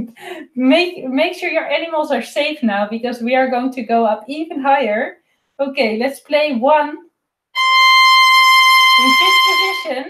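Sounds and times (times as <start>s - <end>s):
violin bowing a long high note: 7.6s - 10.0s.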